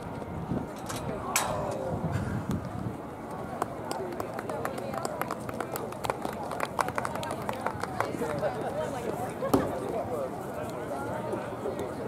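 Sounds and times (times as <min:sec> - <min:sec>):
distant crowd chatter: 0:00.0 - 0:12.0.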